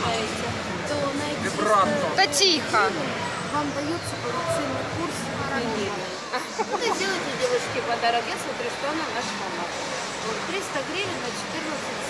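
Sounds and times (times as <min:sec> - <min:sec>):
faint indistinct voices: 0:00.0 - 0:12.0
shopping mall hubbub: 0:00.0 - 0:12.0.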